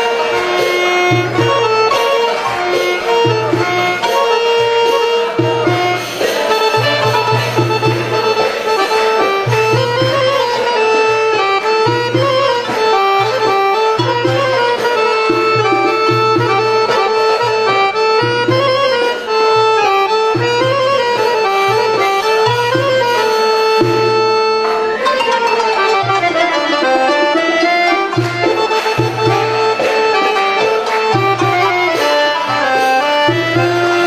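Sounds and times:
piano accordion melody: 0.0 - 34.0.

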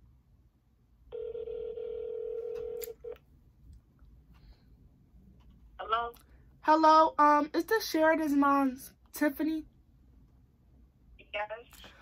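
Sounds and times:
telephone ringback tone: 1.1 - 3.2.

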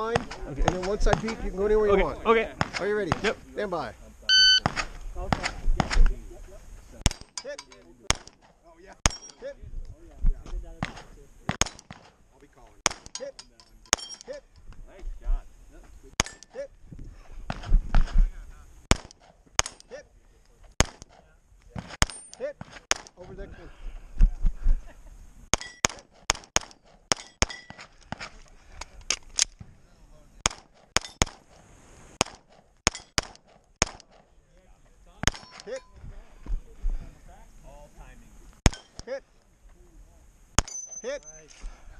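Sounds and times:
pistol shots: 10.8 - 12.2, 18.9 - 19.9, 20.8 - 21.2, 25.5 - 28.3, 30.4 - 31.6, 32.2 - 34.3, 35.2 - 35.7, 38.6 - 39.1, 40.6 - 40.9.

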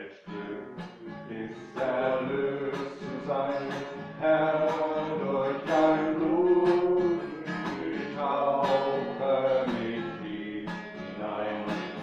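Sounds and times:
strummed acoustic guitar: 0.0 - 12.0.

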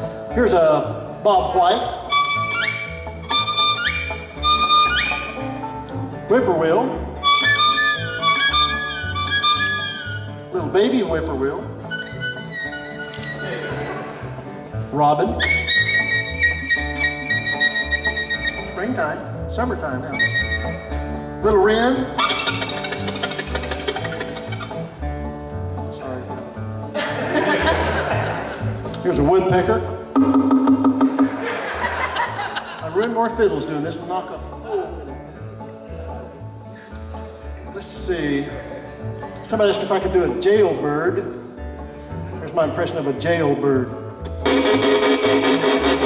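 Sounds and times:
acoustic guitar: 0.0 - 46.0
bluegrass band backing: 0.0 - 46.0
string bass: 0.0 - 46.0
fiddle sliding bird-call notes: 2.1 - 5.5, 7.2 - 10.4, 11.9 - 14.3, 15.4 - 19.0, 20.1 - 21.0.

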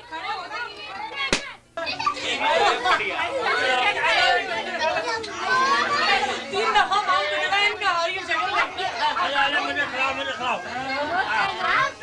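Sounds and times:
chatter of many voices: 0.0 - 12.0.

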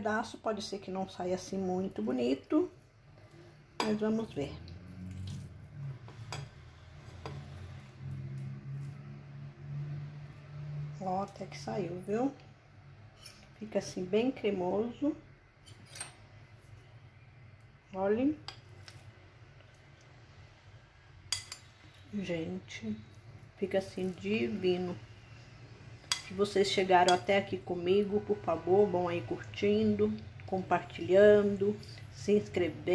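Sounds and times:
spatula scraping glass dish: 13.2 - 13.5
metal spoon clinking on plate: 21.3 - 21.7.

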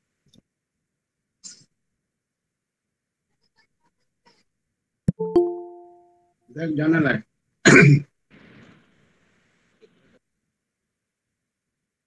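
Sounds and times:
person clearing throat: 7.7 - 8.1.

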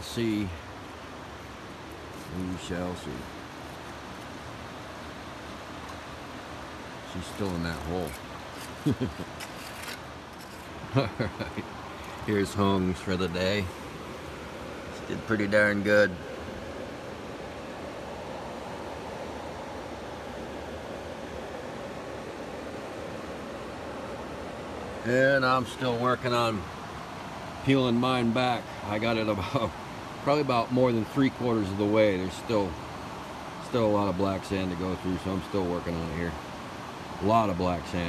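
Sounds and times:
river water rushing: 0.0 - 38.0.

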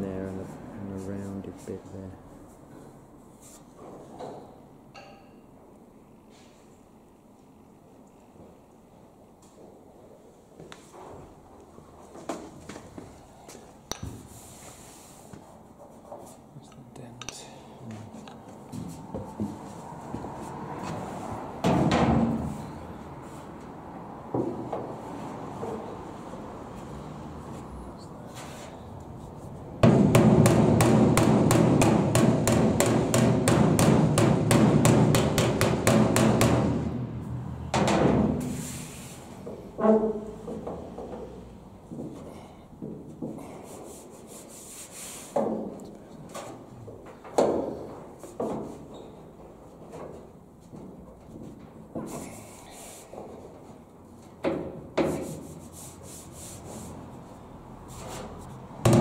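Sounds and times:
hammer tapping steel panel: 29.8 - 37.0
hand rubbing over metal: 43.6 - 45.4, 55.0 - 58.7.

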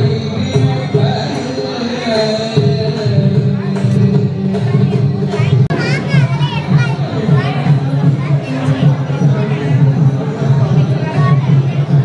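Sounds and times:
crowd chatter: 0.0 - 12.0
child's high voice: 5.3 - 8.8.

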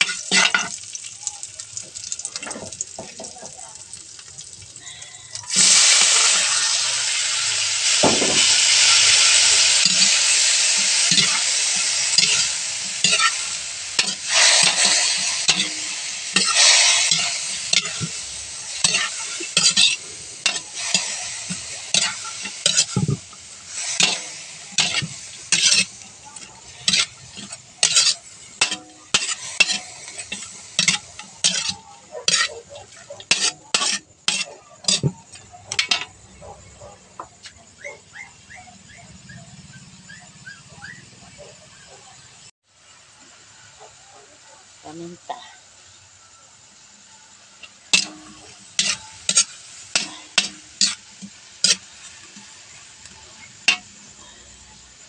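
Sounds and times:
spatula scraping and tapping wok: 0.0 - 1.0, 7.8 - 38.0, 47.6 - 54.3
vegetables sizzling in hot oil: 0.0 - 38.5, 39.1 - 55.0.

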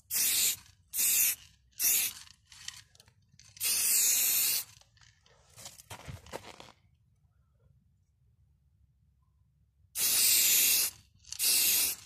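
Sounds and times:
aerosol spray can hissing: 0.0 - 2.1, 10.0 - 12.0.

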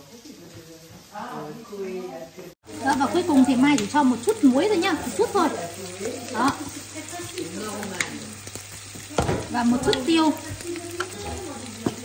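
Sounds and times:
scallops sizzling in a frying pan: 0.0 - 12.0.

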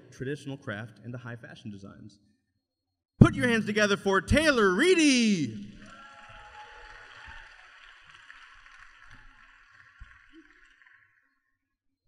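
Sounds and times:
person speaking: 3.2 - 5.8
audience applause: 5.8 - 11.3.

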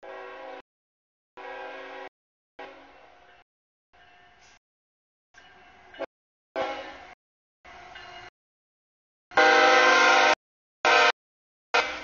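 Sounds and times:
locomotive air horn blasts: 0.0 - 0.6, 1.4 - 3.0, 6.6 - 7.2, 9.3 - 12.0.

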